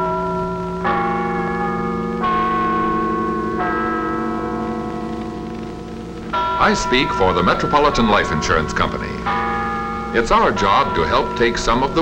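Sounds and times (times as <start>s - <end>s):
tower bells chiming: 0.0s - 12.0s.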